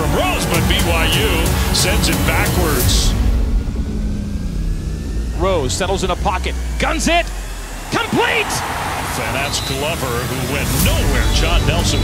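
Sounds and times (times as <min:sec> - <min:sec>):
low rumble: 0:02.2 - 0:08.3
players shouting calls: 0:06.9 - 0:11.9
crowd noise: 0:07.8 - 0:12.0.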